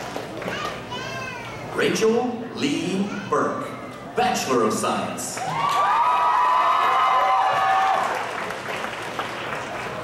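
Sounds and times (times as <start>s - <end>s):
audience whooping and shouting: 5.4s - 8.6s.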